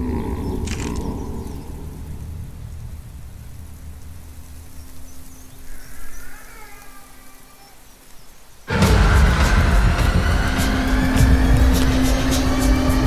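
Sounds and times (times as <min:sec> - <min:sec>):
low rumble: 0:00.0 - 0:05.5, 0:08.7 - 0:13.0.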